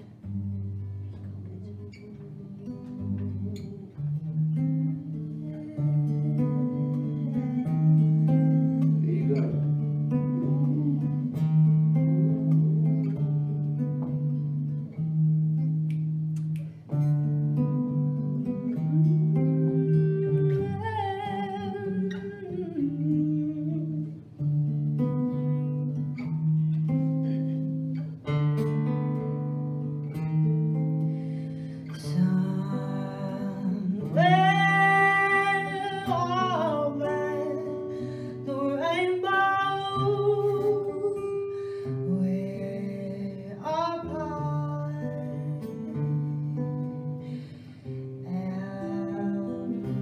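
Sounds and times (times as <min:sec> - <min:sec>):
acoustic guitar playing: 0:00.0 - 0:50.0
person singing with vibrato: 0:01.5 - 0:13.1, 0:18.2 - 0:24.4, 0:31.4 - 0:46.7, 0:48.2 - 0:50.0.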